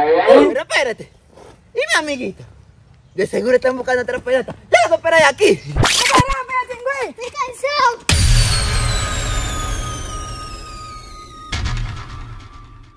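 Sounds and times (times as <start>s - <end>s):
loud electronic whoosh: 5.7s - 6.4s, 8.1s - 12.8s
high tones sliding downward: 5.8s - 6.4s, 8.1s - 12.9s
steady electronic hum: 8.1s - 12.6s.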